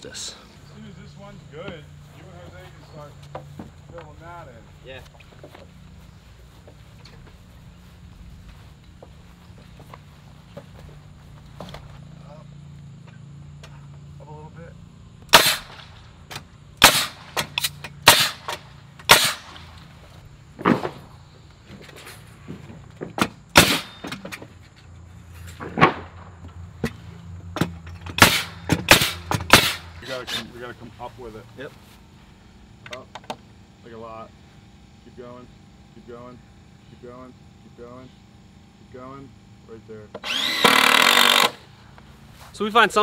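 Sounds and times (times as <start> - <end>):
nail gun shots into wood: 15.3 - 19.6, 23.2 - 24.4, 27.6 - 30.0, 40.2 - 41.6.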